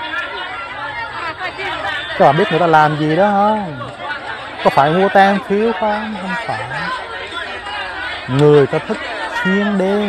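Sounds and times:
crowd babble: 0.0 - 10.0.

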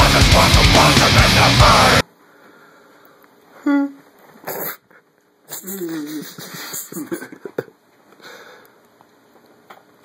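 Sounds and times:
person laughing: 5.5 - 7.8.

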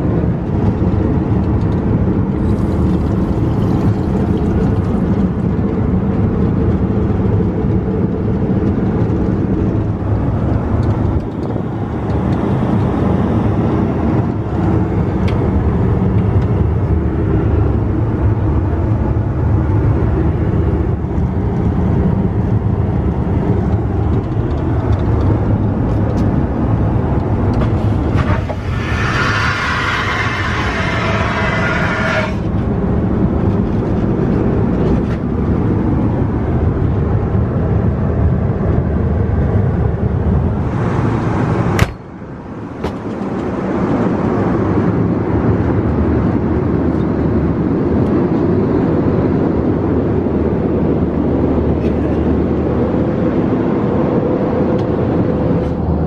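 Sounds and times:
airplane engine and airflow rumble: 0.0 - 56.0
hiss: 28.2 - 32.4.

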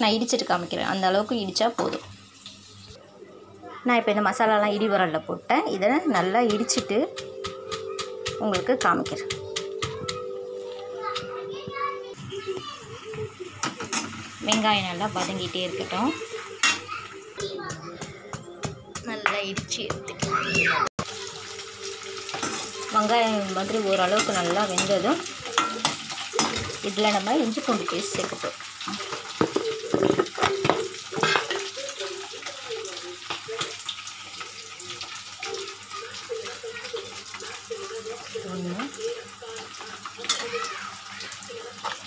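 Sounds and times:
onions sizzling in oil: 0.0 - 17.9, 18.6 - 42.0.

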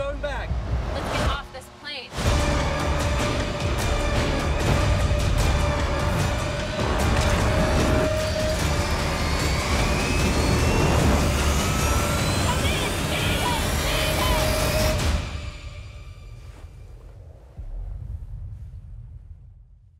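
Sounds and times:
dense trailer score: 0.0 - 19.9
rising whines: 5.5 - 18.2.

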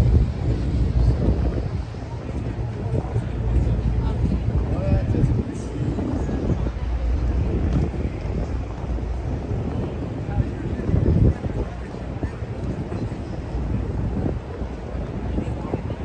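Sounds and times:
faint crowd chatter: 0.0 - 16.0
wind buffeting microphone: 0.0 - 16.0.

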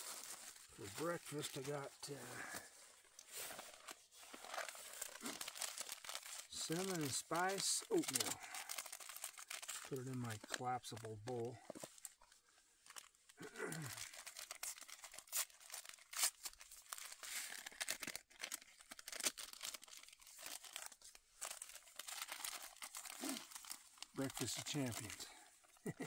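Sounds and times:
packets crinkling and tearing: 0.0 - 26.0.

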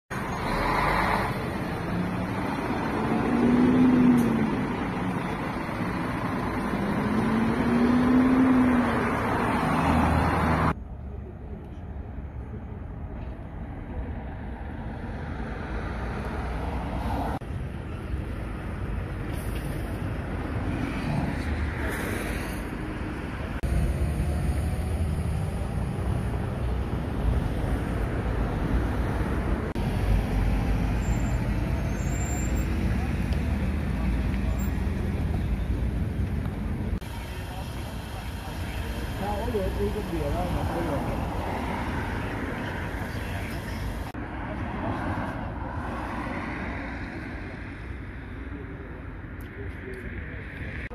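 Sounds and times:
roadside traffic noise: 0.1 - 50.9.

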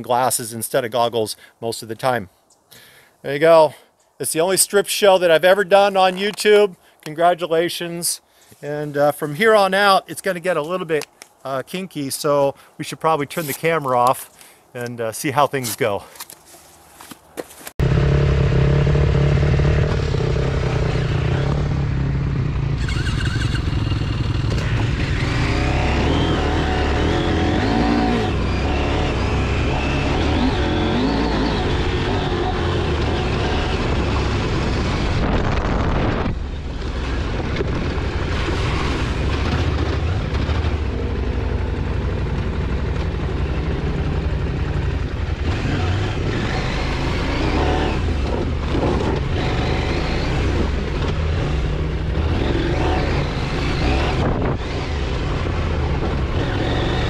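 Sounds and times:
off-road motorcycle engines: 0.0 - 57.0.

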